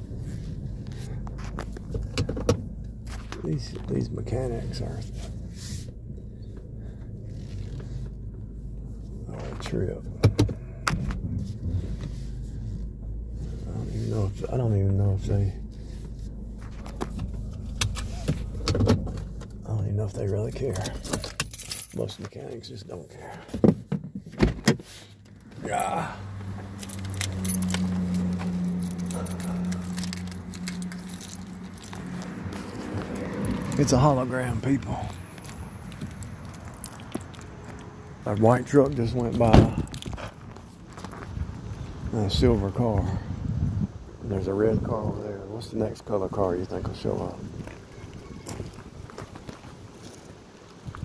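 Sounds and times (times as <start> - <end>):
car engine idling: 0.0 - 21.5, 24.9 - 43.2
keys jangling: 20.8 - 22.2, 26.7 - 33.9, 35.4 - 37.7
handling noise: 23.6 - 38.0.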